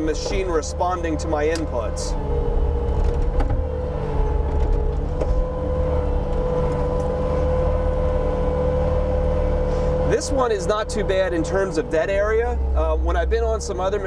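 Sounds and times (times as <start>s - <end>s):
diesel engine at high throttle: 0.0s - 14.0s.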